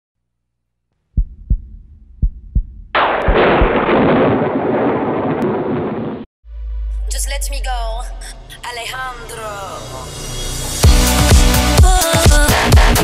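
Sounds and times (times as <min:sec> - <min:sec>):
deep heartbeat thumps: 0:01.2 - 0:04.4
loud thunder-like crash: 0:03.0 - 0:06.3.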